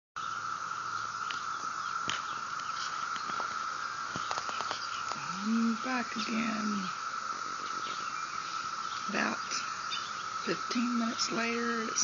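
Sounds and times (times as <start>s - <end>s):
insects droning: 0.2s - 12.0s.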